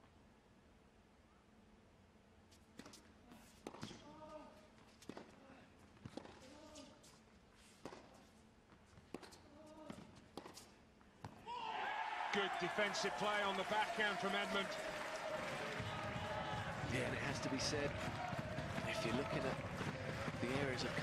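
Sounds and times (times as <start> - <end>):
loud crowd noise: 11.4 - 21.0.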